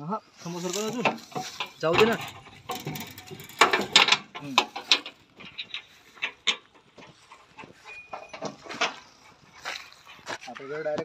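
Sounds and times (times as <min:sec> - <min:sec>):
metal parts clanking and clicking: 0:00.5 - 0:10.4
sharp knocks: 0:01.0 - 0:09.2.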